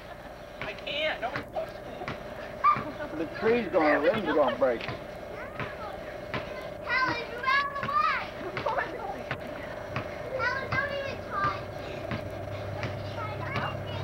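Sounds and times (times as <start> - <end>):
faint hum: 0.0 - 14.0
children shouting in play: 2.6 - 3.0, 5.3 - 9.4.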